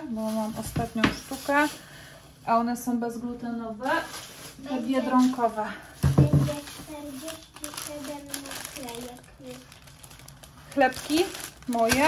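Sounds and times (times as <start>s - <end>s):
people talking: 0.0s - 1.8s, 2.5s - 9.6s, 10.8s - 12.0s
loud thump of groceries: 0.5s - 1.5s, 6.0s - 6.9s.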